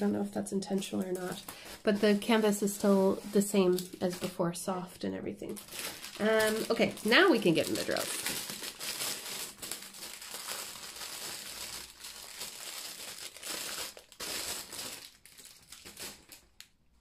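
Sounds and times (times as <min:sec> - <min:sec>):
plastic wrap crinkling: 0:00.0 - 0:04.4, 0:05.0 - 0:17.0.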